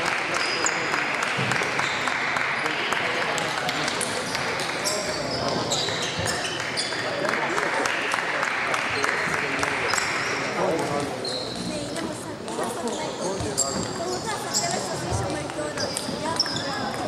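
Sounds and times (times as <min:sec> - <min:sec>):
murmur of voices: 0:00.0 - 0:17.0
short high squeaks: 0:11.2 - 0:11.9, 0:12.9 - 0:15.0.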